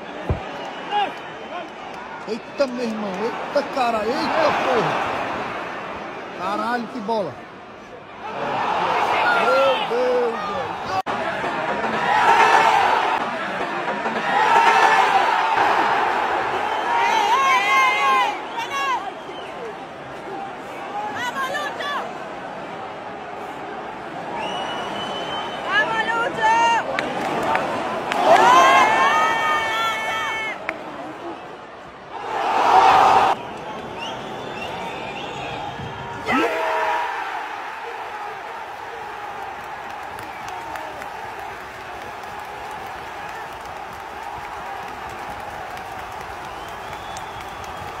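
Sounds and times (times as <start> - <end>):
large crowd cheering: 0.0 - 48.0
spectators shouting and yelling: 0.0 - 48.0.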